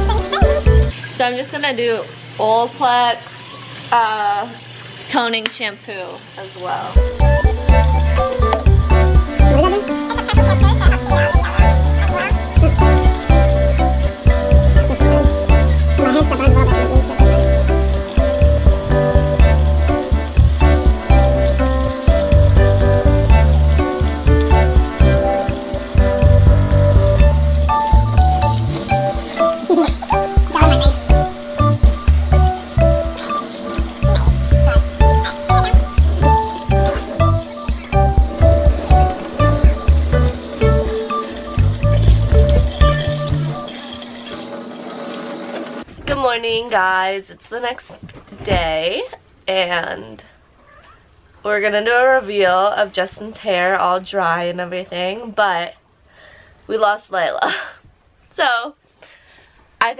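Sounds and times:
music with heavy bass beat: 0:07.0 - 0:41.0.

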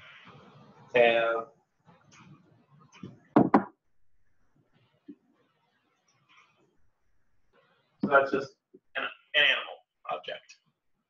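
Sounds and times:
loud sharp knocks: 0:03.3 - 0:03.7.

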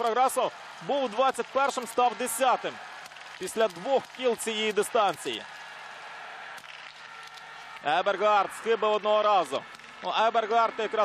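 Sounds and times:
commentator speaking: 0:00.0 - 0:02.8, 0:03.4 - 0:05.4, 0:07.8 - 0:11.0
crowd ambience: 0:00.0 - 0:11.0.

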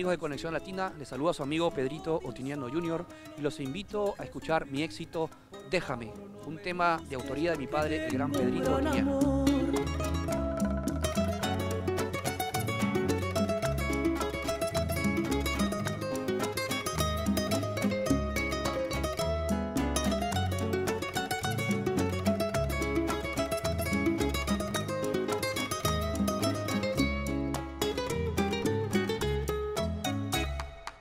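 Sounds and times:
acoustic guitars picking melody: 0:00.0 - 0:30.8
bass line: 0:07.0 - 0:30.6.

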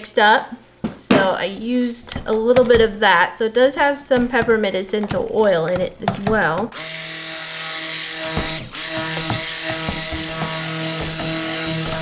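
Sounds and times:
stick blender running: 0:06.0 - 0:12.0.

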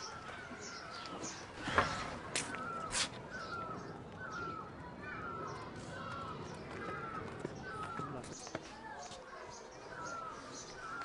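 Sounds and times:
birds calling: 0:00.0 - 0:11.0.

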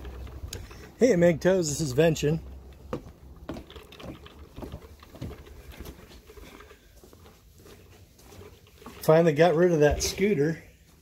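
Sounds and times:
footsteps on wooden decking: 0:00.0 - 0:11.0
camera handling rumble: 0:03.4 - 0:06.8.

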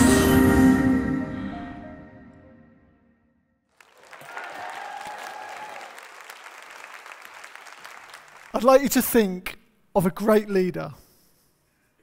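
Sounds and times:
audience applauding: 0:03.7 - 0:09.1.

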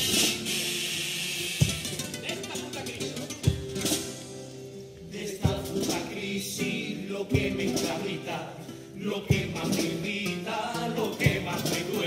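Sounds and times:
spanish guitar playing: 0:00.0 - 0:12.0.

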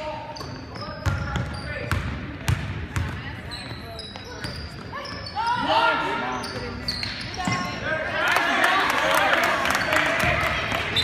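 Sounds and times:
sneakers squeaking: 0:00.0 - 0:08.0, 0:10.7 - 0:11.0.

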